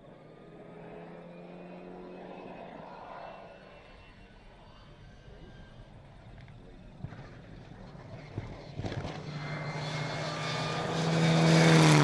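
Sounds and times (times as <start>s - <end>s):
rally car engine approaching: 0.0s - 12.0s.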